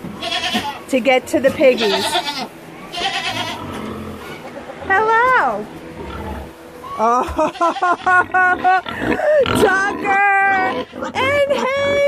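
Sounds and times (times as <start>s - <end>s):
rustling in a pen: 0.0s - 0.9s, 1.5s - 4.6s
goat bleating: 0.2s - 0.9s, 1.6s - 4.0s, 6.8s - 8.2s, 9.2s - 12.0s.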